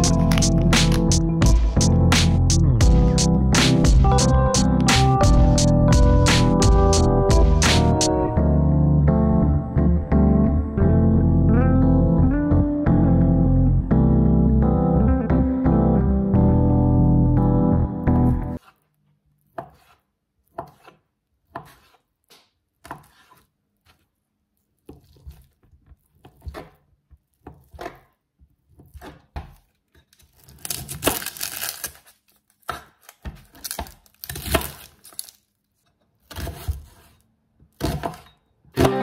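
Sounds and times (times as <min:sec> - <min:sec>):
music with plucked guitar: 0:00.0 - 0:18.6, 0:38.8 - 0:39.0
knife cutting onion on board: 0:18.6 - 0:24.2, 0:24.8 - 0:31.2, 0:36.2 - 0:39.0
knife cutting onto plastic board: 0:19.5 - 0:24.1.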